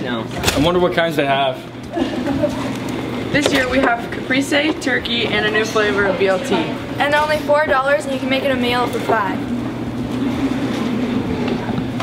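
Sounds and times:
low even hum: 0:00.0 - 0:12.0.

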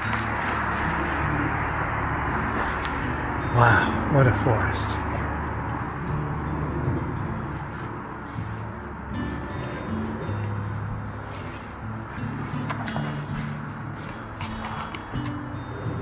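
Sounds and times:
soft background music: 0:00.0 - 0:16.0.

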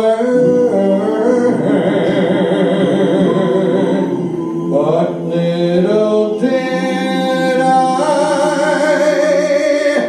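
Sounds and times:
male vocal group singing harmony: 0:00.0 - 0:10.0.

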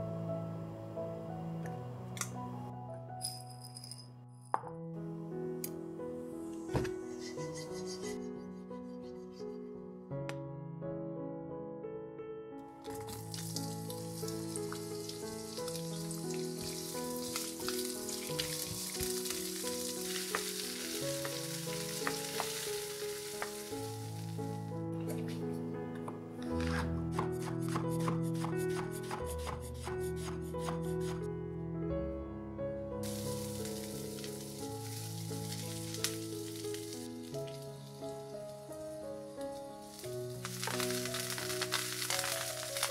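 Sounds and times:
soft melodic background music: 0:00.0 - 0:42.9
onions sizzling in frying pan: 0:13.2 - 0:24.4, 0:33.0 - 0:38.7, 0:39.8 - 0:42.9.

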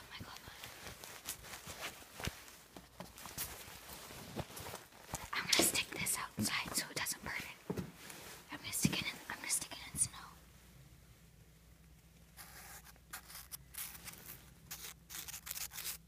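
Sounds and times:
person whispering: 0:00.0 - 0:00.8, 0:05.3 - 0:07.7, 0:08.5 - 0:10.4.

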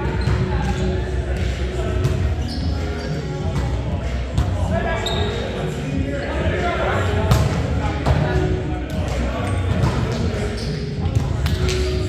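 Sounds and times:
players' voices: 0:00.0 - 0:12.0
sneaker squeaks on hardwood: 0:00.1 - 0:00.8, 0:02.0 - 0:03.2, 0:05.0 - 0:05.4.

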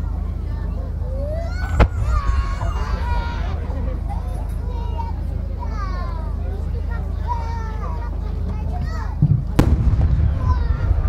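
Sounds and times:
spectators chatting: 0:00.0 - 0:11.0
firework low thump: 0:01.7 - 0:03.9, 0:09.2 - 0:11.0
firework bang with rumbling tail: 0:01.7 - 0:04.0, 0:09.6 - 0:11.0.

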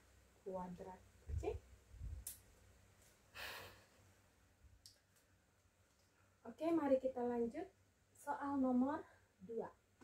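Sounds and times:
short breath out: 0:03.3 - 0:04.0.

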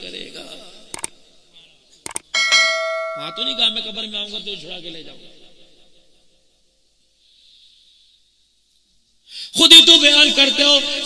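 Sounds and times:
mouse clicks: 0:02.0 - 0:02.3
notification bell chime: 0:02.4 - 0:04.0.

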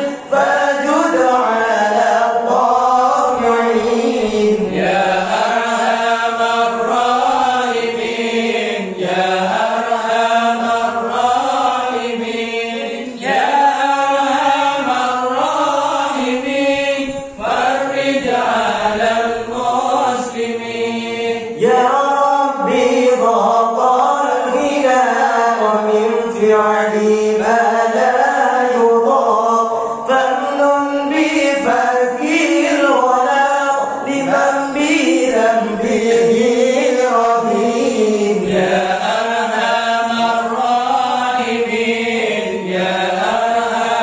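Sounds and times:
men chanting together: 0:00.0 - 0:44.0.

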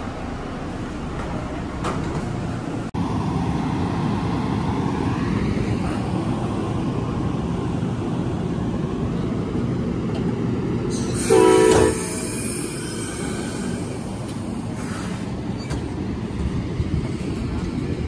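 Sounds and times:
train engine rumble: 0:00.0 - 0:18.0
train horn blast: 0:11.2 - 0:12.3.

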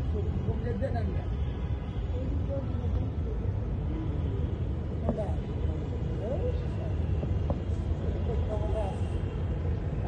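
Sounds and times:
low rumble of outdoor ambience: 0:00.0 - 0:10.0.

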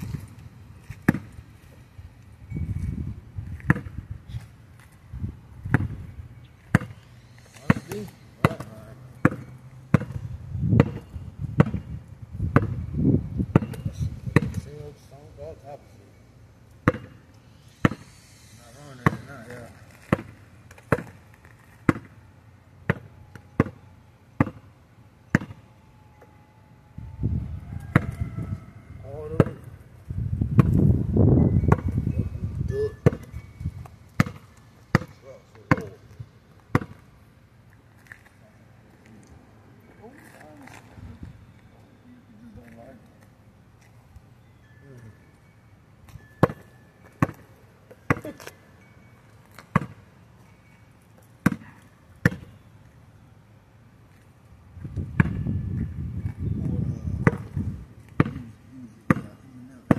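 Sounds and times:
basketball bouncing on gravel: 0:00.0 - 0:01.5, 0:02.8 - 0:04.1, 0:05.6 - 0:14.7, 0:16.8 - 0:17.2, 0:17.8 - 0:18.1, 0:19.0 - 0:22.2, 0:22.8 - 0:24.7, 0:25.3 - 0:25.6, 0:27.9 - 0:28.3, 0:29.3 - 0:29.8, 0:30.4 - 0:31.0, 0:31.6 - 0:32.1, 0:33.0 - 0:37.1, 0:46.4 - 0:48.6, 0:49.5 - 0:50.0, 0:51.4 - 0:52.6, 0:54.8 - 0:56.4, 0:57.2 - 0:59.9.

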